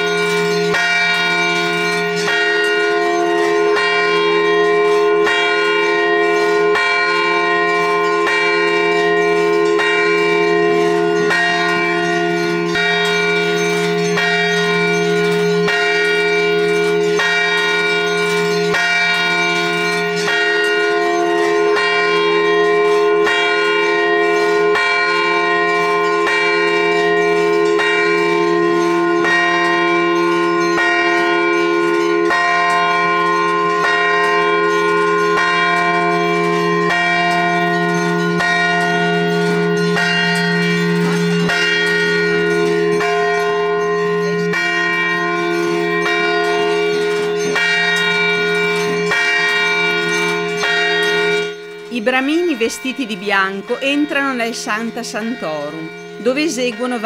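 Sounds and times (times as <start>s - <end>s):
temple bells ringing: 0.0s - 57.0s.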